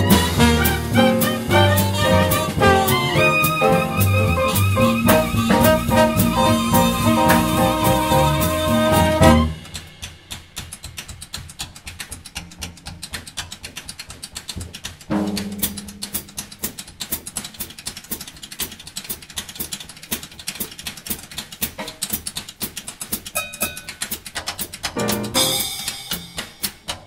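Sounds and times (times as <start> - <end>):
loud accented drum hit: 0.0 - 10.1, 15.1 - 16.5
drum solo with sticks: 0.0 - 11.3, 15.1 - 27.0.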